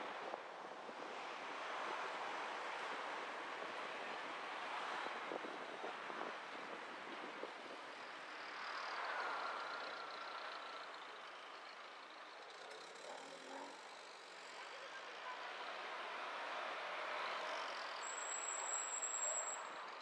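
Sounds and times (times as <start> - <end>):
car tyre road and engine noise: 0.0 - 20.0
vehicles passing close by: 0.0 - 20.0.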